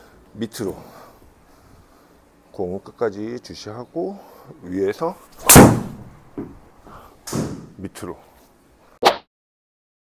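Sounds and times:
golf club striking ball: 5.4 - 6.5.

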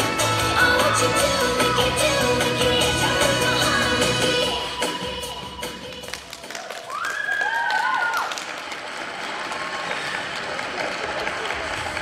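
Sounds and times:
audience applauding: 6.1 - 12.0
high cheer: 6.3 - 12.0.

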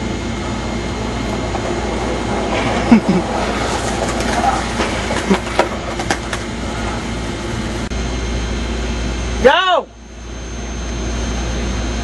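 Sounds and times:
skateboard wheels rolling on pavement: 0.0 - 7.9
skateboard clacks: 0.5 - 7.2.

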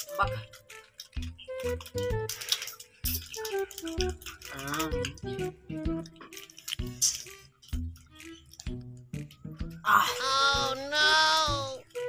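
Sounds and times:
background music: 0.0 - 12.0
wavering wailing voice: 9.8 - 11.8.

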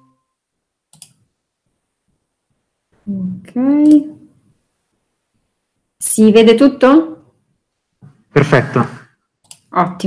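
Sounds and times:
computer mouse double click: 0.9 - 1.2.

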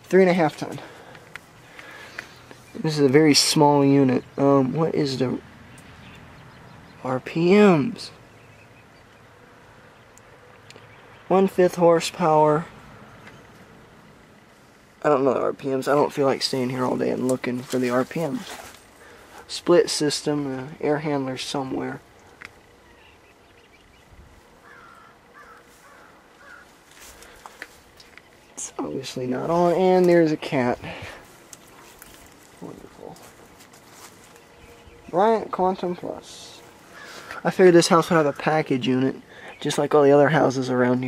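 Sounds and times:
person speaking: 0.0 - 1.2, 1.8 - 5.4, 15.0 - 22.1, 27.0 - 41.0
faint outdoor background hiss: 0.0 - 41.0
faint bird caws: 22.0 - 28.4, 36.6 - 37.5.

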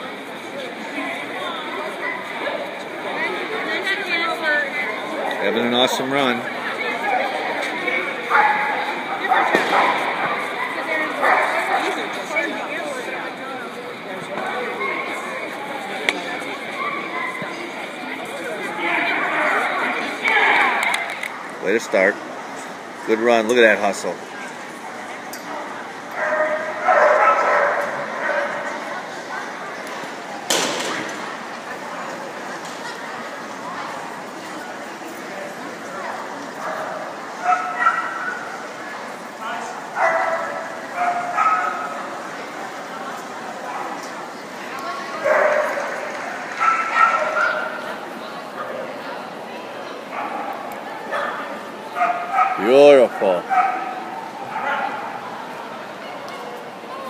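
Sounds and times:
murmur of people talking: 0.0 - 57.0.

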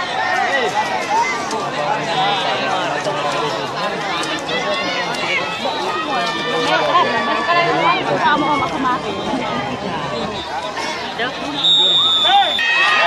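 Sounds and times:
crowd chatter: 0.0 - 13.0.

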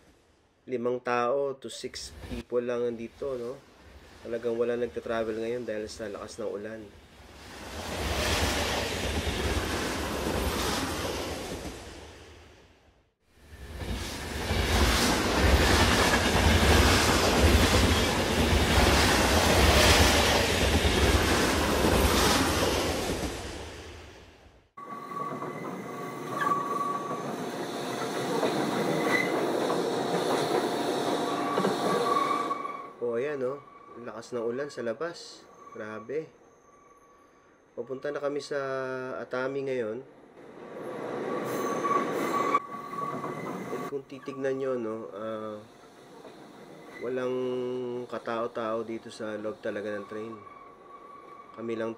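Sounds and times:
train running on rails: 7.3 - 12.4, 13.4 - 24.2, 24.8 - 34.1, 40.4 - 51.9
thin wheel squeals: 24.8 - 29.5, 31.0 - 34.1, 41.3 - 44.7, 45.6 - 51.8.

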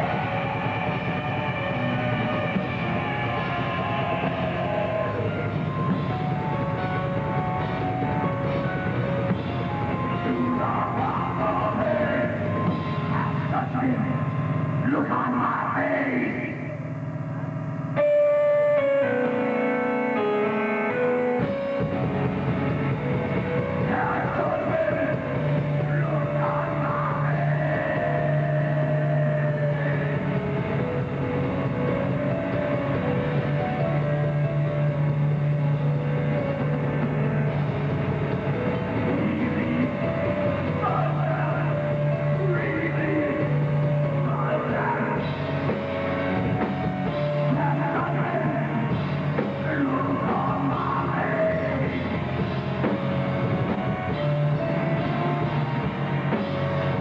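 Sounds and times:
heavy metal band playing live: 0.0 - 57.0.

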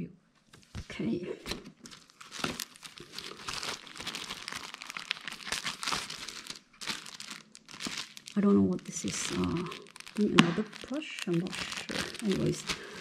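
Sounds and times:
plastic bags crinkling: 1.5 - 13.0.

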